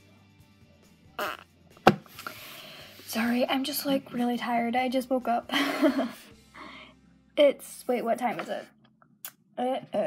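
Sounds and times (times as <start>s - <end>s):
woman blowing puff of breath: 2.1s - 3.1s.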